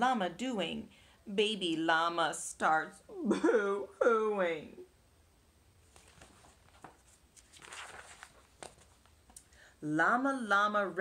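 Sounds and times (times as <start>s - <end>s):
book pages turning: 5.8s - 9.4s.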